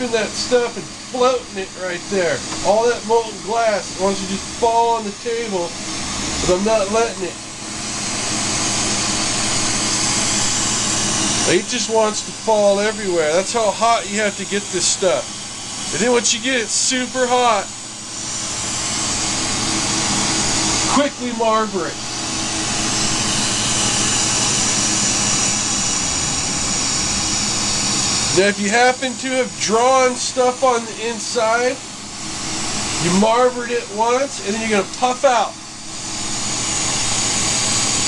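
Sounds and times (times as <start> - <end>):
torch flame hissing: 0.0 - 38.0.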